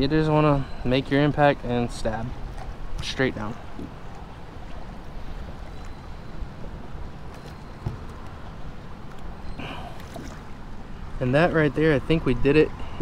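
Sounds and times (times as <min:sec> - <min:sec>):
water sloshing against kayak hull: 0:02.3 - 0:11.0
faint knock: 0:07.8 - 0:08.2.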